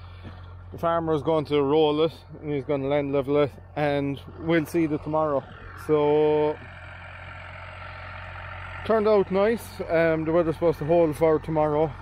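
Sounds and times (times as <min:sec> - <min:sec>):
tractor engine droning: 0:00.0 - 0:12.0.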